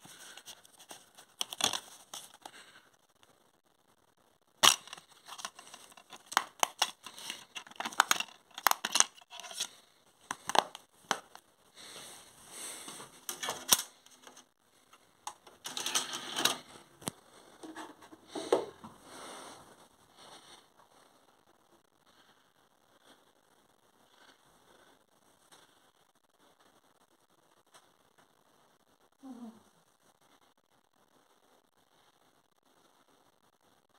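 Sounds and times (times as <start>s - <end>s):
plastic case clicking and knocking: 4.6s - 9.7s, 10.3s - 11.4s
scraping and rustling: 4.6s - 12.0s, 15.3s - 17.0s.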